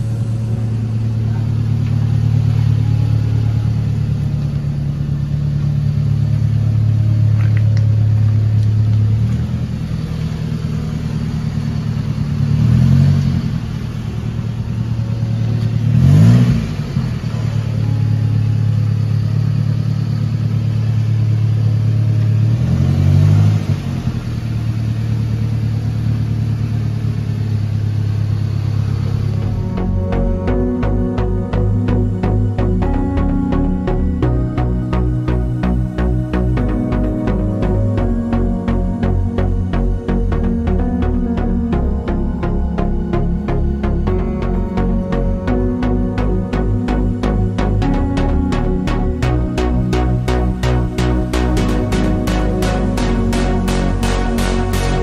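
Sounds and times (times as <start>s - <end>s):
car engine idling and revving: 0.0s - 55.0s.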